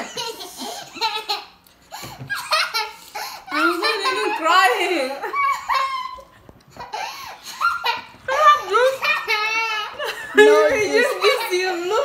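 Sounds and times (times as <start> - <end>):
girl laughing hard: 0.0 - 12.0.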